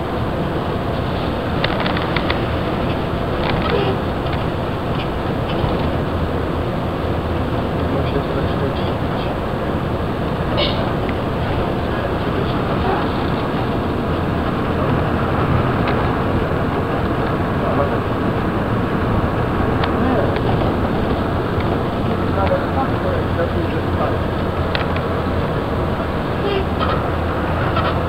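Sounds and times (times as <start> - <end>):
bus engine and road rumble: 0.0 - 28.0
faint rattles: 0.7 - 28.0.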